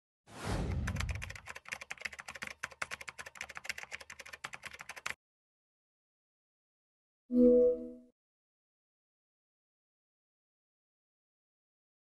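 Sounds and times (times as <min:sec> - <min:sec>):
whoosh: 0:00.3 - 0:01.2
rapid keyboard typing: 0:00.7 - 0:05.2.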